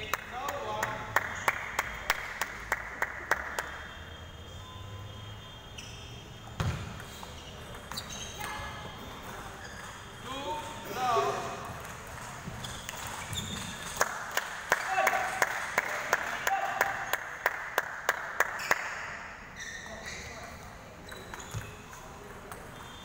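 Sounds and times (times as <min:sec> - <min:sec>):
table tennis ball bouncing: 0:11.6 - 0:14.0, 0:21.0 - 0:23.0.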